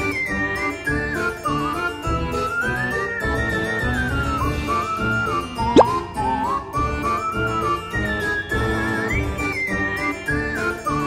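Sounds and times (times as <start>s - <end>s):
rising pop sound effect: 5.8s - 6.0s.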